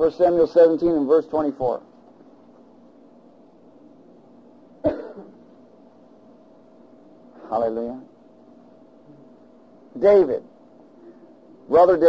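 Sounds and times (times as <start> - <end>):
faint steady hum: 0.0 - 12.0
person coughing: 4.8 - 5.4.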